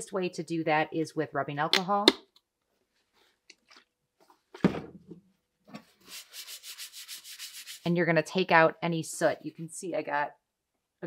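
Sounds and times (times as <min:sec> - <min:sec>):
paper towel rubbing and rustling: 0:06.0 - 0:07.9.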